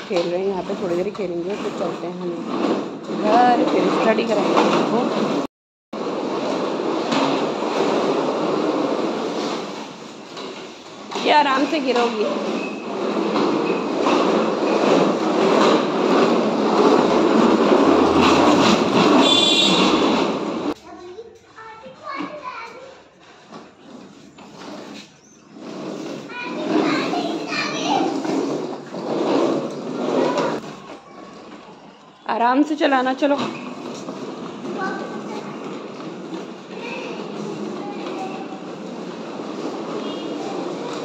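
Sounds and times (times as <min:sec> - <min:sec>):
plastic wheels rumbling on tiles: 0:00.0 - 0:41.0
children's voices: 0:20.8 - 0:23.1, 0:26.2 - 0:28.6, 0:30.0 - 0:31.9, 0:34.6 - 0:36.0, 0:36.6 - 0:38.8, 0:40.3 - 0:41.0.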